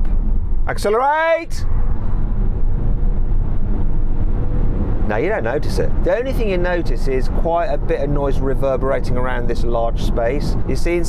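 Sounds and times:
tyre and road noise: 0.0 - 11.0.

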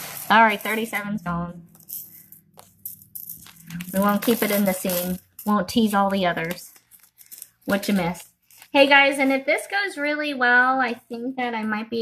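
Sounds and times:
plastic bags and buttons rattling: 0.0 - 8.9.

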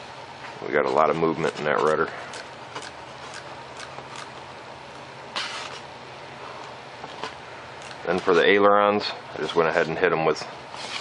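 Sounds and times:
room hum and hiss: 0.0 - 11.0
foam model plane handling rustle: 10.7 - 11.0.

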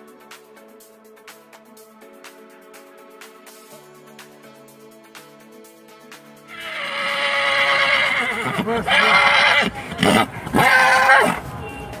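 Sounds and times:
stallion neighing: 6.5 - 11.4.

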